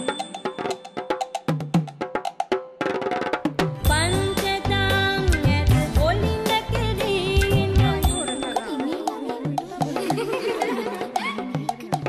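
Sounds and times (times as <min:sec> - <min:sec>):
deep drum beats: 0:03.3 - 0:12.0.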